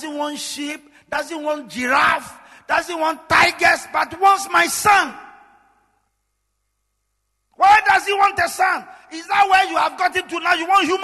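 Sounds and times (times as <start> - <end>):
man preaching loudly: 0.0 - 5.6, 7.6 - 11.0.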